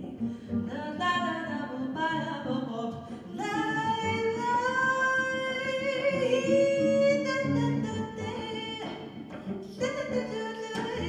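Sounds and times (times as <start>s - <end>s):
woman singing jazz: 0.0s - 9.1s, 9.7s - 11.0s.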